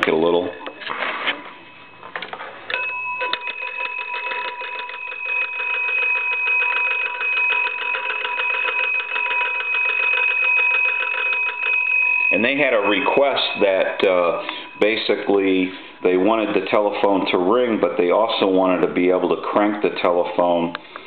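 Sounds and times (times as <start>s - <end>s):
telephone bells ringing: 0.0s - 18.6s.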